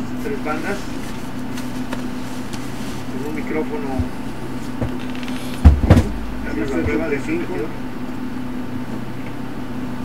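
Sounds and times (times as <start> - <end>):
steady low hum: 0.0 - 9.8
loud deep thumps: 4.0 - 8.1.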